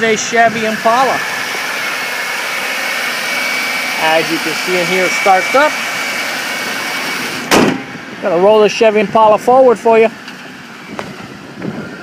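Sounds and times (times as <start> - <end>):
car engine idling: 0.0 - 12.0
thin high whine: 0.0 - 12.0.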